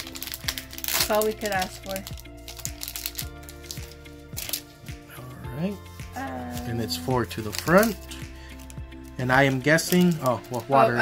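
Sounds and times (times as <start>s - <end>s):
foil wrapper crinkling: 0.0s - 4.8s, 6.5s - 11.0s
background music with beat: 0.0s - 11.0s.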